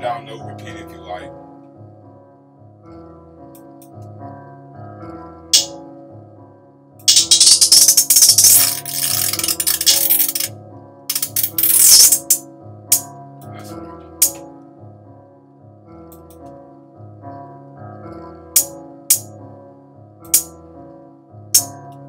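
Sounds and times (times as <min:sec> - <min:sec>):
looping piano melody: 0:00.0 - 0:22.0
hi-hat rolls and hits: 0:07.1 - 0:10.5, 0:11.1 - 0:12.4.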